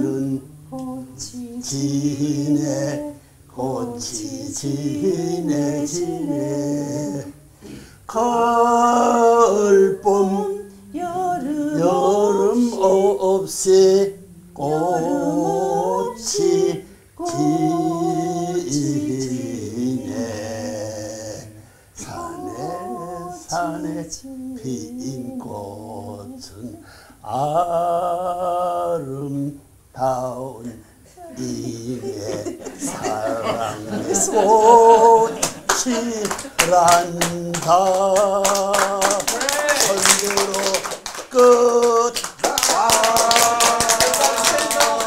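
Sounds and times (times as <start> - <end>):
woman and man singing unaccompanied: 0.0 - 45.0
hand clapping: 35.4 - 45.0.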